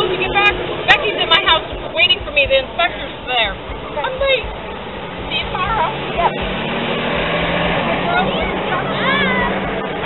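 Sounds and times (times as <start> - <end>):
distant people talking: 0.0 - 10.0.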